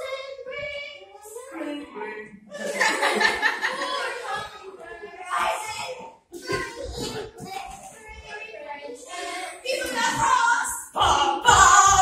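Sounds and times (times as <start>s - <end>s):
voices holding notes: 0.0s - 12.0s
crowd laughing: 2.5s - 4.7s.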